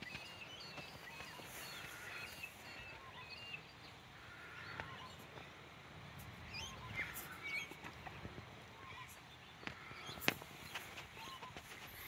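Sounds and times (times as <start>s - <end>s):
bird chirps: 0.0s - 5.4s, 6.5s - 8.1s, 8.8s - 12.0s.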